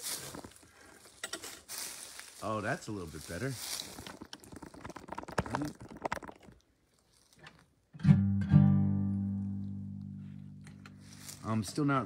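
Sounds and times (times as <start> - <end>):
guitar handling rustle: 10.3 - 12.0.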